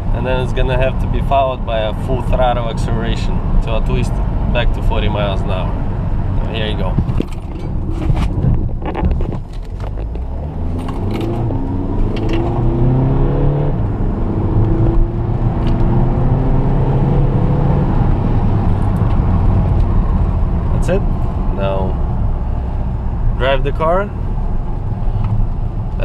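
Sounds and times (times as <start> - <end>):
car engine accelerating: 0.0 - 26.0.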